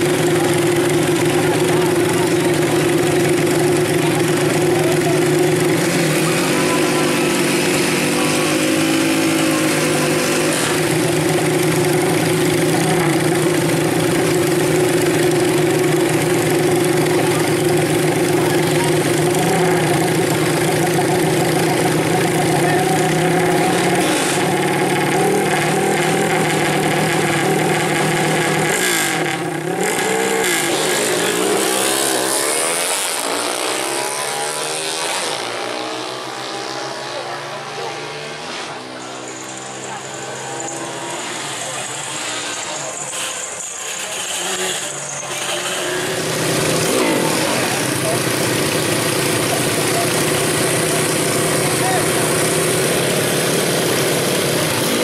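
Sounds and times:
motorcycle engine running: 0.0 - 55.0
motorcycles accelerating away: 0.0 - 55.0.

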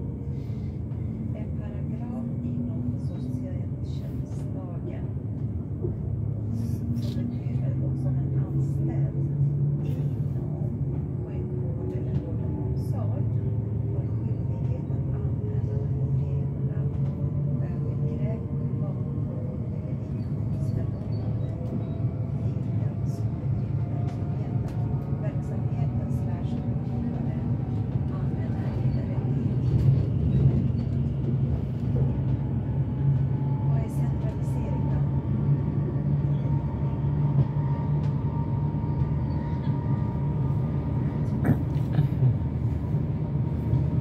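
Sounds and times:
train wheels rumbling on track: 0.0 - 44.0.

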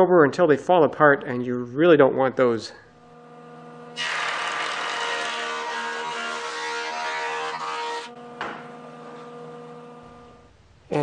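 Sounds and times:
machine motor hum: 3.0 - 10.5
jointer cutting wood: 4.0 - 9.4.

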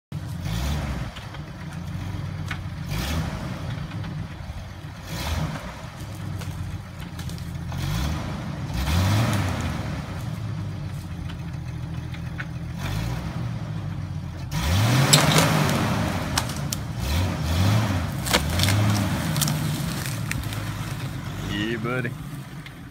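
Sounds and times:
log dragging along ground: 0.2 - 13.6, 14.4 - 22.9
car engine revving: 0.3 - 11.0, 12.6 - 22.9.

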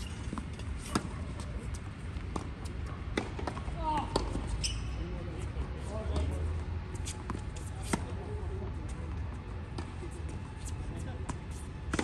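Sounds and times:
shoe squeak on court: 0.0 - 1.1, 4.3 - 5.0
racket hitting tennis ball: 0.2 - 1.5, 2.3 - 4.5.

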